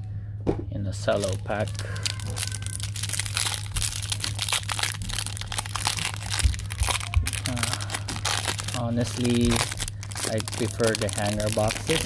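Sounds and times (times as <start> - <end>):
cellophane wrapper crinkling: 1.1 - 12.0.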